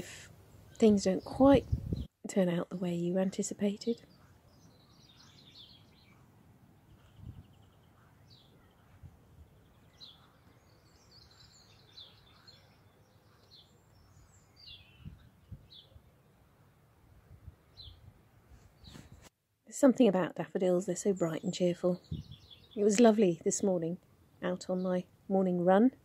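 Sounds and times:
faint bird chirps: 3.2 - 18.1, 21.2 - 23.0.

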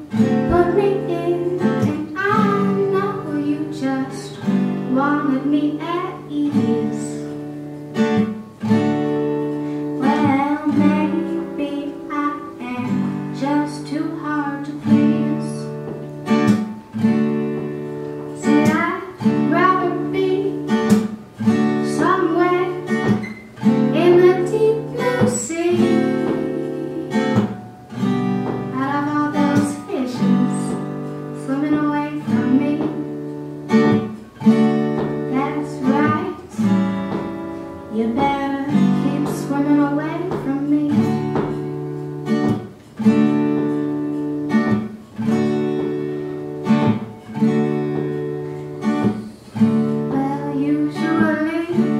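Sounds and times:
woman singing: 0.0 - 7.5, 9.9 - 16.0, 18.3 - 27.6, 28.4 - 41.7, 49.0 - 51.9
guitar strumming chords: 0.0 - 51.9.

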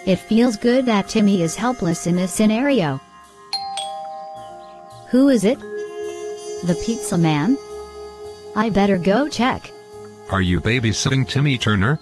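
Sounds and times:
two-tone doorbell chime: 3.2 - 8.6.

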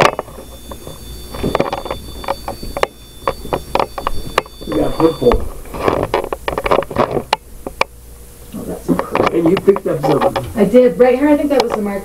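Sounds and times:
meter steady high electronic tone: 0.0 - 8.4.

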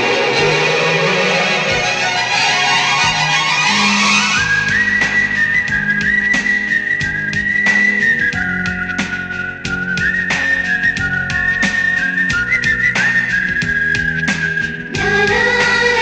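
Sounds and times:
bass line: 0.0 - 16.0
whistle-like lead melody: 0.0 - 16.0.

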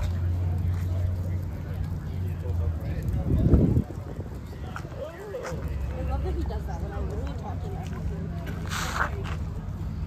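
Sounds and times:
distant voices talking: 0.0 - 10.0.

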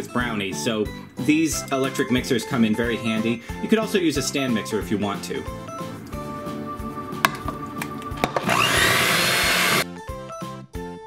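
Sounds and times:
background music with steady beat: 0.0 - 11.0
electric hand mixer whining: 5.8 - 9.8.

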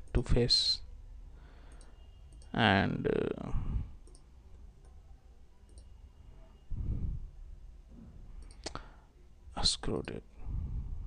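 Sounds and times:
computer mouse clicking: 4.0 - 5.0, 8.4 - 8.8.

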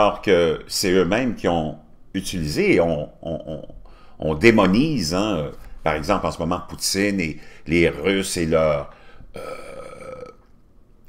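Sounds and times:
man's drawn-out hesitation sound: 0.0 - 9.8.

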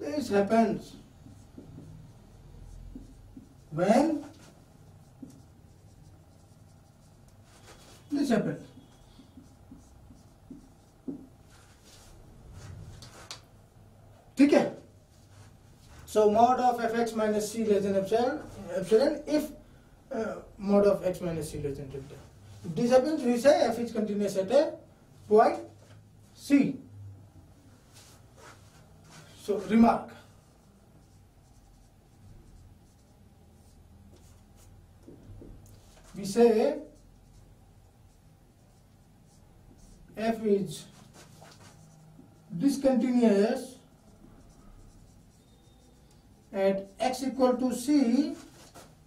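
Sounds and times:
marker pen stroke on whiteboard: 0.2 - 13.5, 27.8 - 49.0
marker pen tapping whiteboard: 0.9 - 2.0, 2.7 - 3.7, 5.1 - 7.0, 8.7 - 11.4, 35.0 - 35.7.

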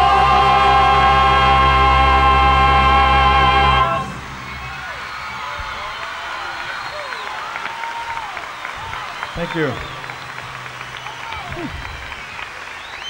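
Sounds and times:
singer holding vibrato note: 0.0 - 5.0
live band and choir final chord: 0.0 - 5.6
crowd cheering and applauding: 0.0 - 13.0.

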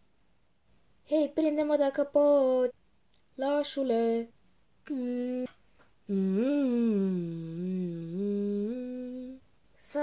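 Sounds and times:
person humming: 4.9 - 9.4.

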